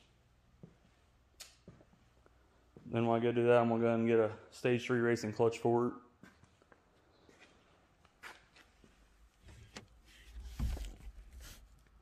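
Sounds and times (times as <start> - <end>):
faint shuffles: 6.2 - 12.0.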